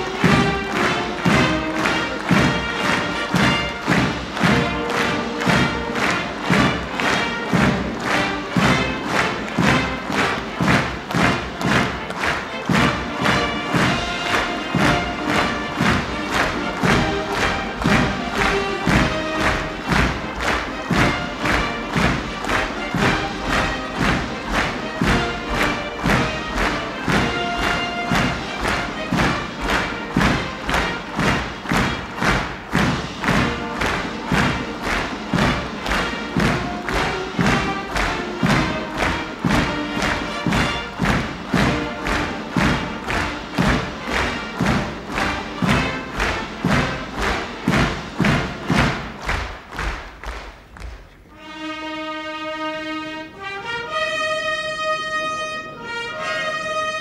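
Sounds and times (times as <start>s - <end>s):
audience clapping in unison: 0.0s - 51.6s
band music: 0.0s - 57.0s.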